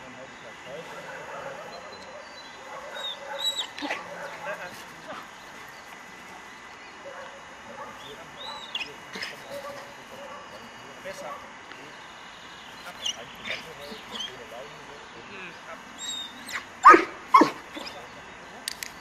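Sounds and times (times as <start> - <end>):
dog whining: 3.0 - 4.1, 16.0 - 18.0.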